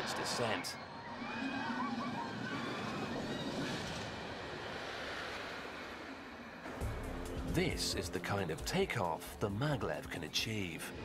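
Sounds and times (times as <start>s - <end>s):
ride sled rushing down track: 0.0s - 7.0s.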